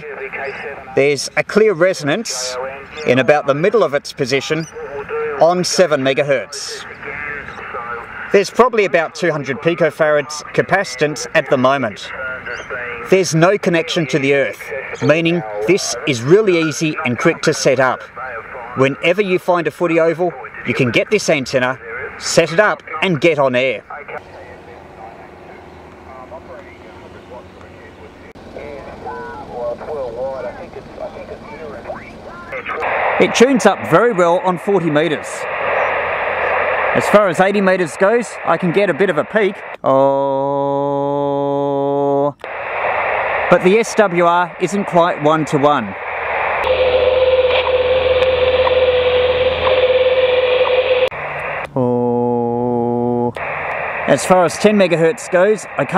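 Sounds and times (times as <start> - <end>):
radio band hiss: 0.0 - 39.9, 42.3 - 52.0, 53.3 - 55.9
steady radio tone: 0.0 - 39.9, 42.4 - 55.9
faint narrow radio voices: 0.0 - 40.0, 42.3 - 55.9.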